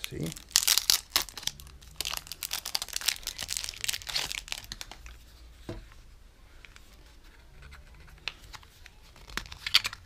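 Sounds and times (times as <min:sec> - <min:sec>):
plastic wrapper crinkling: 0:00.0 - 0:05.2.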